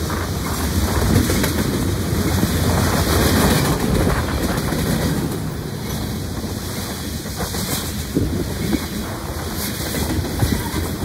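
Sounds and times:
train wheels rumbling on rail: 0.0s - 11.0s.

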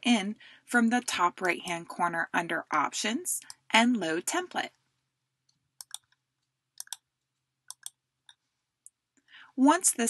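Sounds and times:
computer mouse clicks: 5.5s - 9.0s.

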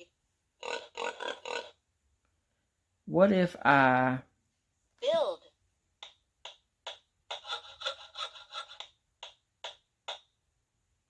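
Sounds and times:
recorded pig grunts: 0.6s - 1.8s.

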